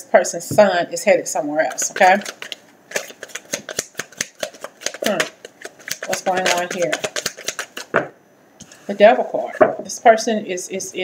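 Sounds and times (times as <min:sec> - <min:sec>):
cards being shuffled: 0:01.7 - 0:08.8.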